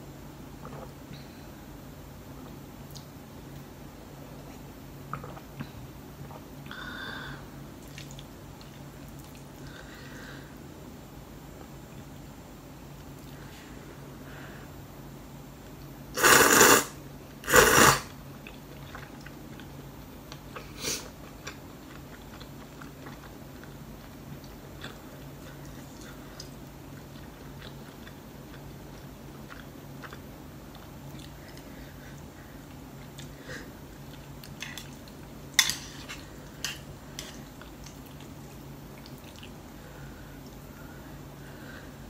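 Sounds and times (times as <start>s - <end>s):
steady low hum: 0.0s - 42.0s
person chewing noodles: 7.8s - 9.8s, 17.5s - 33.4s, 36.0s - 40.1s
person slurping noodles: 16.2s - 18.1s.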